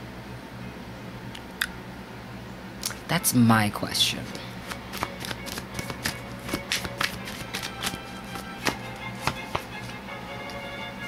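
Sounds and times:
soft background music: 2.9 - 11.0
cards being shuffled: 4.2 - 10.6.

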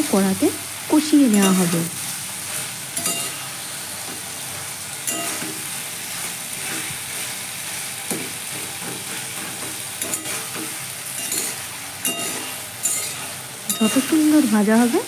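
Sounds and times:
vegetables sizzling in hot oil: 0.0 - 15.0
metal spatula scraping pan: 8.5 - 14.4.

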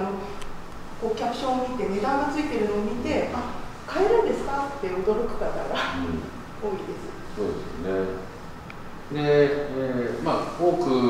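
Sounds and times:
woman talking: 0.0 - 0.4, 1.0 - 6.0, 6.6 - 7.4.

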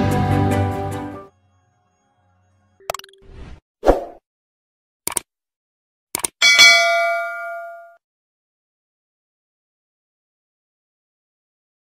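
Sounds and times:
short clicks: 5.1 - 5.3, 6.1 - 6.4
bright metallic ding: 6.4 - 8.0.

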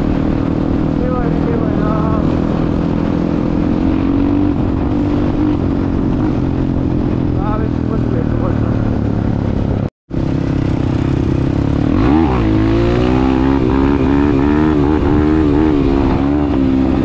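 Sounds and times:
dirt bike engine running: 0.0 - 17.0
wind noise: 0.0 - 17.0
person speaking: 7.4 - 9.0.

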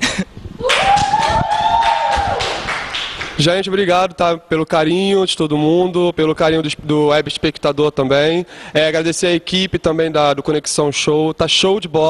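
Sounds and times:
high-pitched whooping cheer: 0.6 - 2.8.

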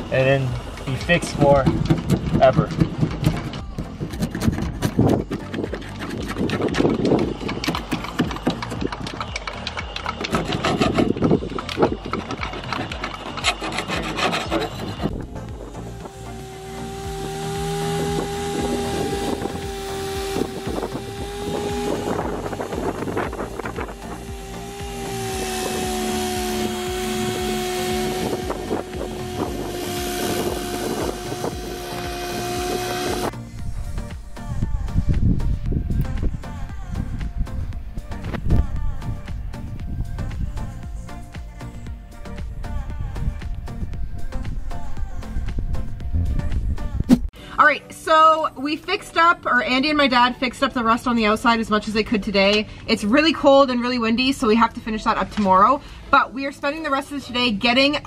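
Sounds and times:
power drill sanding metal: 0.0 - 33.3
putty knife scraping rusty metal: 0.5 - 15.1.

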